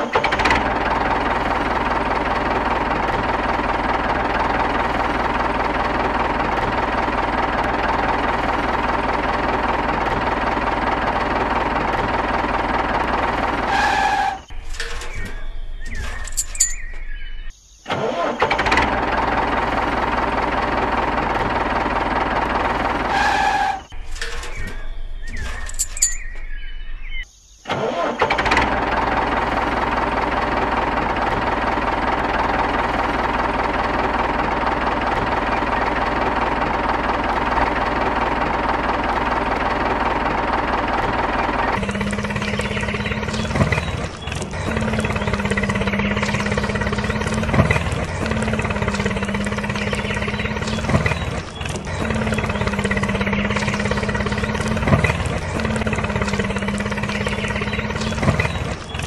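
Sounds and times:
tractor engine running: 0:00.0 - 0:59.0.

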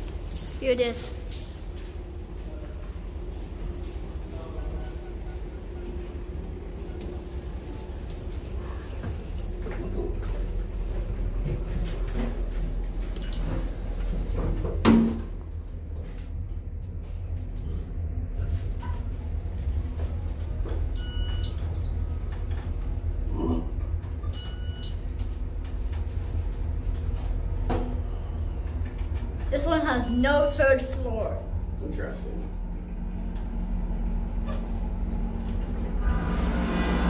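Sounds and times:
elevator humming: 0:00.0 - 0:37.0.

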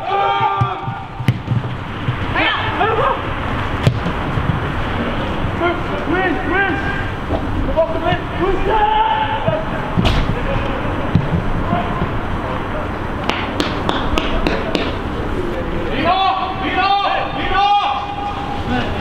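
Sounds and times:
football players shouting: 0:00.0 - 0:03.6, 0:05.3 - 0:13.2, 0:15.9 - 0:19.0
ball being kicked: 0:00.4 - 0:02.2.

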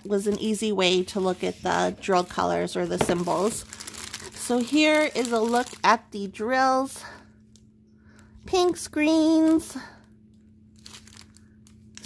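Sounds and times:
plastic bag crinkling: 0:00.0 - 0:07.2, 0:10.7 - 0:12.0
plastic crackles: 0:01.7 - 0:12.0.

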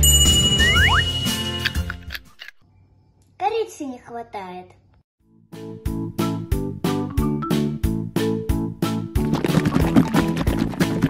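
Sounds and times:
background music: 0:00.0 - 0:02.3, 0:05.2 - 0:11.0
girl speaking: 0:03.4 - 0:04.8.

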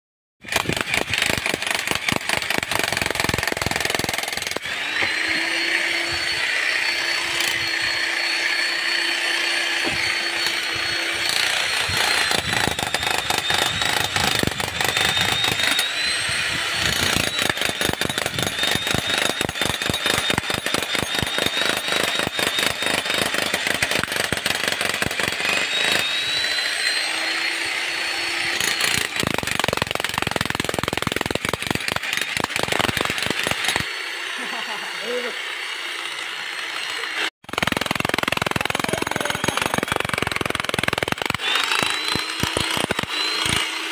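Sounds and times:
demolition hammer breaking concrete: 0:00.4 - 0:04.7, 0:16.9 - 0:26.0, 0:28.6 - 0:33.9, 0:37.4 - 0:43.6.

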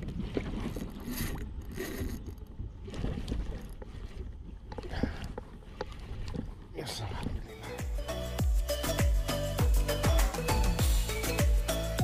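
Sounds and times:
water slapping against kayak hull: 0:00.0 - 0:07.4
water splashes: 0:00.0 - 0:07.8.

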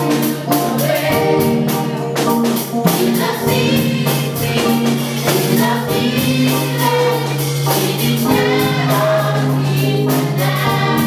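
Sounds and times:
steady beat: 0:00.0 - 0:11.0
women's choir singing gospel: 0:00.0 - 0:11.0.

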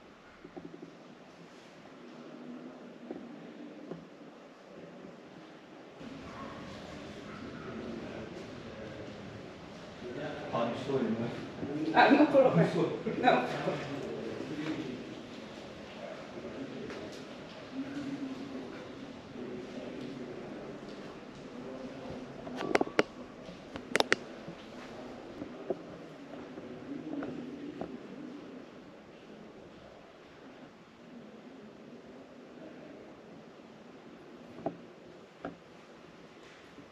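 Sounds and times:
steady ambient noise: 0:00.0 - 0:36.9
murmur of indistinct voices: 0:01.9 - 0:36.9.

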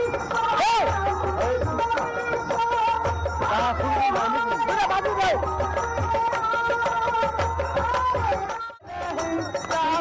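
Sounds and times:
hand drums beating fast: 0:00.0 - 0:10.0.

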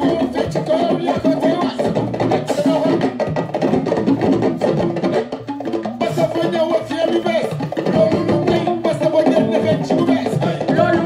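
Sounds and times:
music playing: 0:00.0 - 0:11.0
percussion hits: 0:00.0 - 0:11.0.

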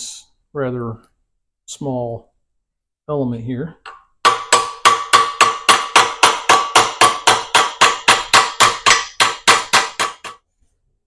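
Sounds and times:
hammer striking metal with ring: 0:03.9 - 0:10.4.

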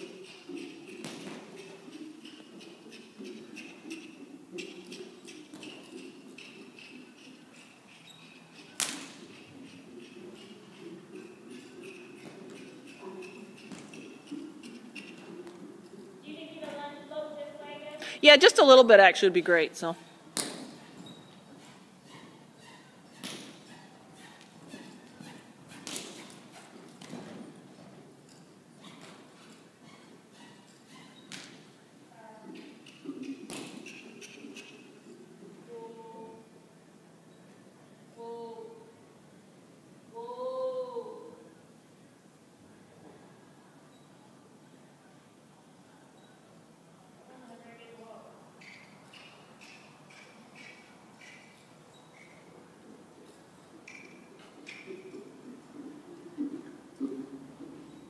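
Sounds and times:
horse hooves on dirt: 0:00.0 - 0:16.8
faint hoofbeats: 0:00.0 - 0:18.2, 0:20.0 - 0:38.8, 0:48.1 - 0:58.0.

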